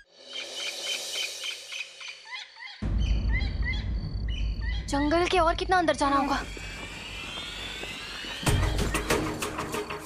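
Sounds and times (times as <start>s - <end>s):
birds chirping: 0.3s - 10.0s
steady low rumble: 2.8s - 8.6s.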